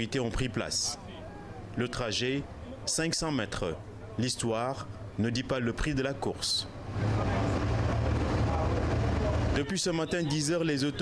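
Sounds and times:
car engine and tyre rumble: 0:06.7 - 0:09.6.

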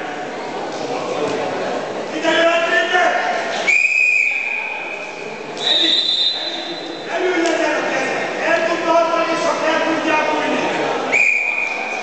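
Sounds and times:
referee's whistle long blast: 0:03.7 - 0:04.8, 0:05.6 - 0:07.0.

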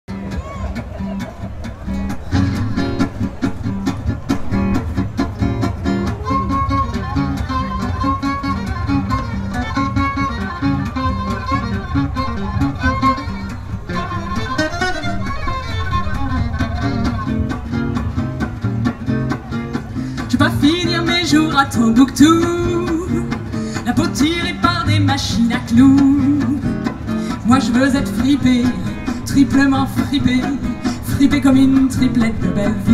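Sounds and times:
double bass: 0:00.1 - 0:32.9
strummed acoustic guitars: 0:00.1 - 0:32.9
violin playing melody: 0:06.1 - 0:17.7.

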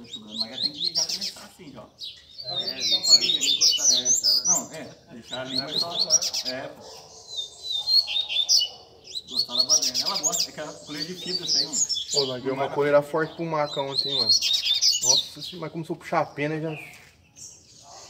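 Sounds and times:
men talking: 0:00.0 - 0:07.4, 0:09.1 - 0:17.1
birds chirping and trilling: 0:00.0 - 0:18.0.

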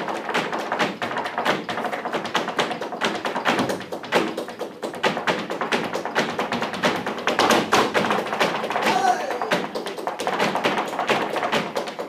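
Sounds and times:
dancer's shoes tapping on stage: 0:00.0 - 0:12.0
flamenco guitars playing: 0:08.2 - 0:10.1.

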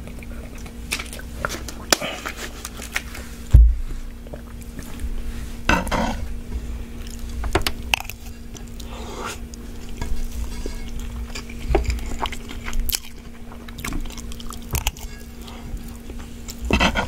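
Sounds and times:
close chewing with wet mouth sounds: 0:00.0 - 0:03.2, 0:04.1 - 0:05.2, 0:06.8 - 0:16.7
steady low hum: 0:00.0 - 0:17.0
metal spoon scraping a pan: 0:10.0 - 0:11.6.

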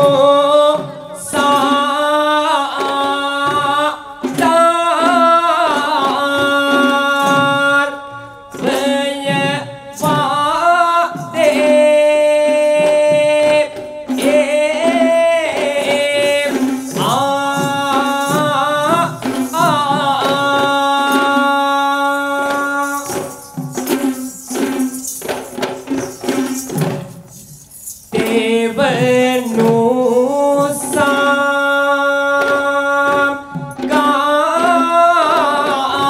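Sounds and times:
drum strokes: 0:00.0 - 0:36.0.

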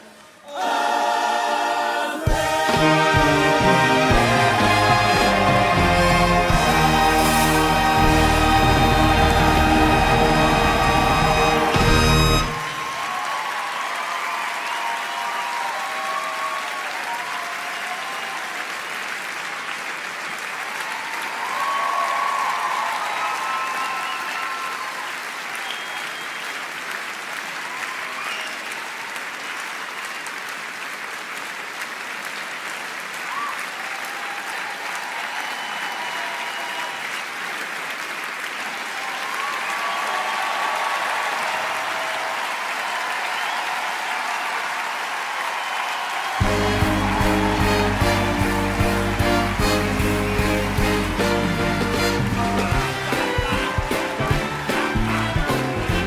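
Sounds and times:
audience applauding: 0:00.0 - 0:56.0
cheers and whoops: 0:07.0 - 0:18.8, 0:20.6 - 0:26.8, 0:27.6 - 0:29.5, 0:33.2 - 0:37.6, 0:38.6 - 0:51.6.

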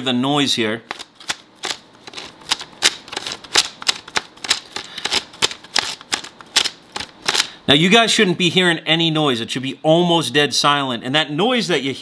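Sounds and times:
plastic gears clicking: 0:00.9 - 0:07.5.

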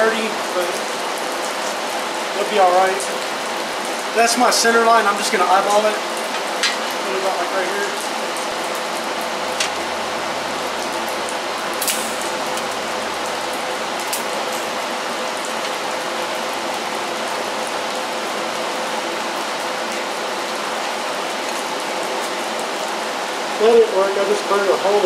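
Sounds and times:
rain on a roof: 0:00.0 - 0:25.0
welding arc buzzing: 0:08.5 - 0:15.8.

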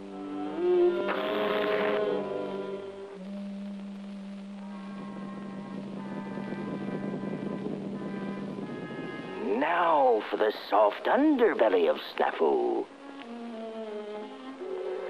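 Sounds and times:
person speaking: 0:09.4 - 0:12.9.

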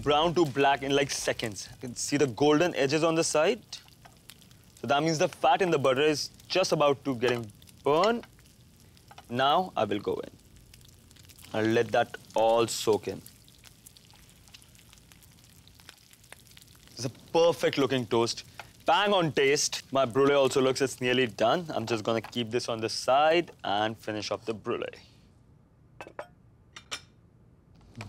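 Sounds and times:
bread sizzling in butter: 0:00.0 - 0:23.4
pan clinking on burner grate: 0:26.0 - 0:27.0.

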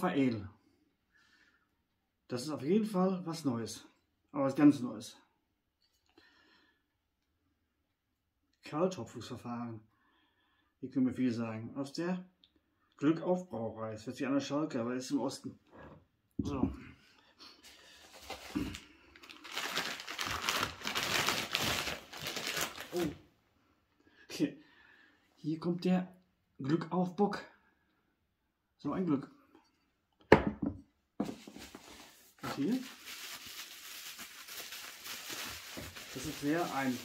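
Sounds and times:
newspaper crumpling and rustling: 0:17.6 - 0:23.2, 0:31.2 - 0:37.0.

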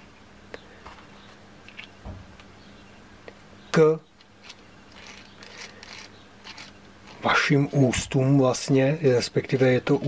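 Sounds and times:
small metal parts scratching and clicking: 0:04.2 - 0:07.5.

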